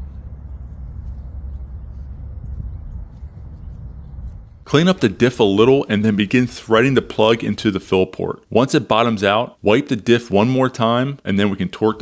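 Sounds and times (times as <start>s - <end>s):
low background rumble: 0.0s - 8.0s.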